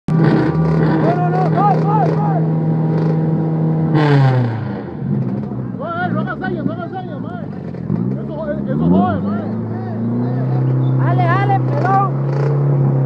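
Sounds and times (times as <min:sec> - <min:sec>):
car engine revving: 0:00.1 - 0:13.0.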